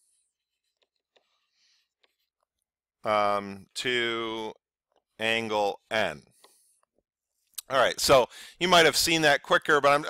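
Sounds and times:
stylus scratching on tablet screen: 0.2s - 2.6s.

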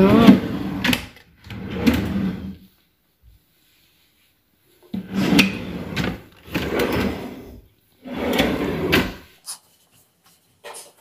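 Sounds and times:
drawers sliding: 0.0s - 2.6s, 4.9s - 9.4s.

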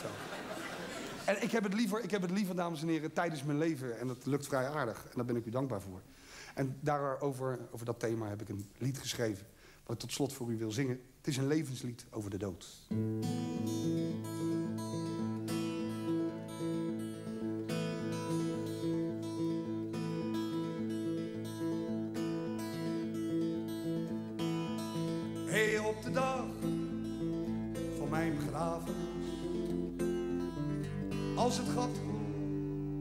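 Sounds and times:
acoustic guitar picking: 12.9s - 33.0s
sliding melodic guitar line: 12.9s - 33.0s.

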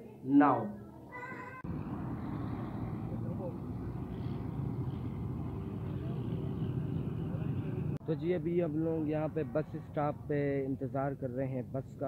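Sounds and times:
road traffic: 1.2s - 12.0s
van engine rumble: 1.6s - 8.0s.

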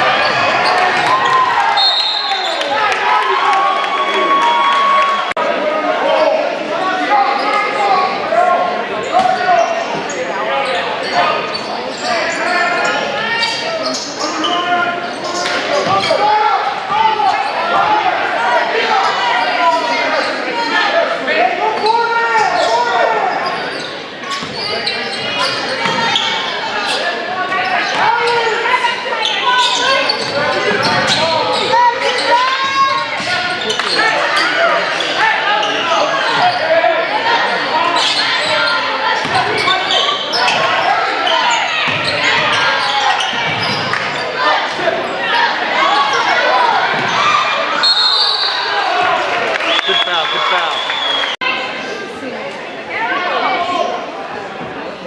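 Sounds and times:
players shouting in gym: 0.0s - 51.8s.

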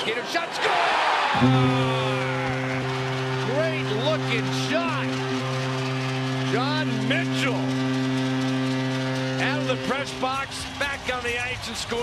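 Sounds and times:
goal horn blast: 1.4s - 11.2s.

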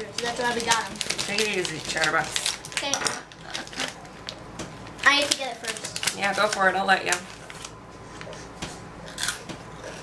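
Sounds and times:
plastic snack bag handled: 0.0s - 3.0s, 3.6s - 7.8s.

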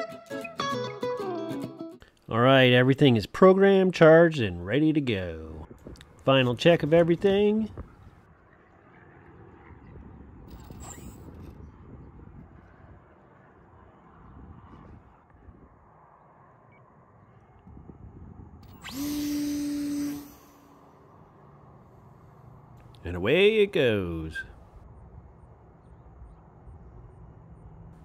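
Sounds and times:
electric motor propeller hum: 10.5s - 11.2s, 18.6s - 21.8s.

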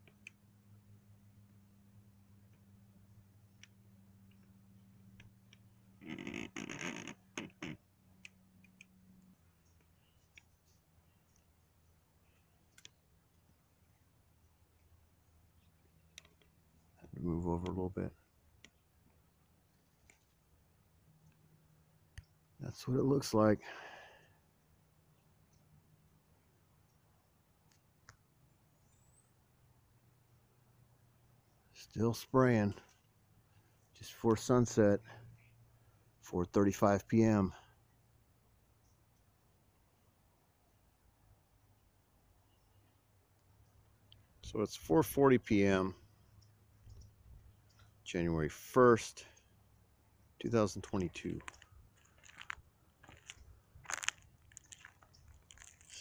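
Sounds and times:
faint clicks: 3.5s - 11.5s, 12.3s - 13.6s, 15.6s - 16.6s, 22.1s - 22.5s, 42.8s - 44.3s.

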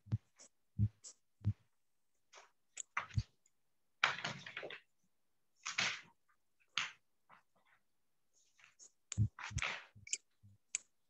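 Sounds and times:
soft low thumps: 0.0s - 1.6s, 9.1s - 9.6s.

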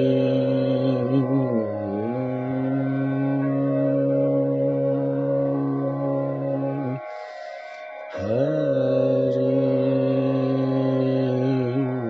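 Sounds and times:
man chanting devotional song: 0.0s - 12.0s
soft steady drone: 0.0s - 12.0s.

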